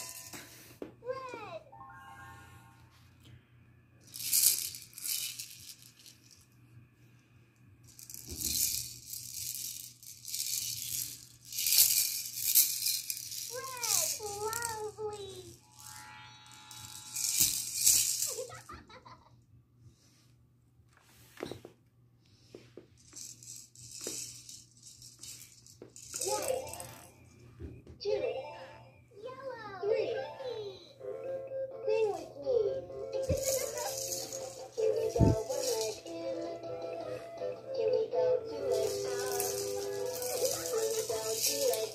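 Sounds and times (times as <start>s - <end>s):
plastic baby rattle shaking: 0.0s - 0.4s, 4.0s - 6.5s, 7.8s - 15.9s, 16.7s - 18.7s, 23.0s - 27.2s, 33.2s - 36.4s, 38.6s - 41.9s
steady electronic tone: 1.8s - 3.2s, 15.6s - 17.2s.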